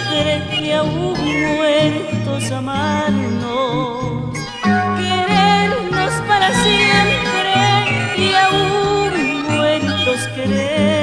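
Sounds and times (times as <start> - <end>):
wavering melody: 2.9 - 11.0.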